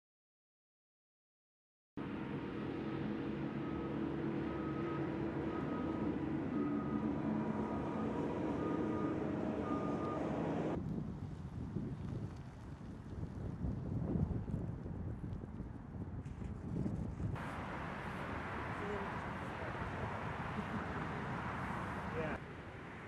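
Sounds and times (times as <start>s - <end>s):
car rumbling: 2.0s - 10.8s, 17.4s - 23.0s
car driving with steady hum: 2.0s - 11.6s, 17.0s - 23.0s
wind on microphone: 10.7s - 22.4s.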